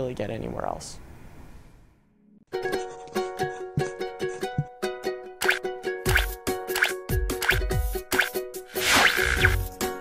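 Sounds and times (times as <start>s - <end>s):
cartoon plop effect: 5.4s - 9.6s.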